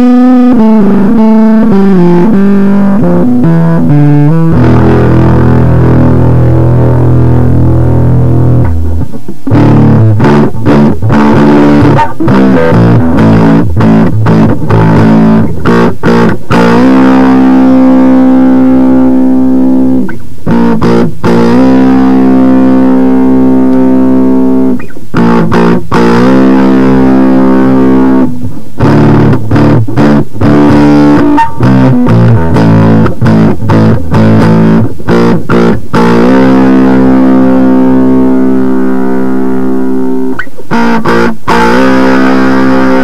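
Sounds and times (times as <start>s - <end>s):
fuzz-distorted electric guitar note: 0.0s - 43.0s.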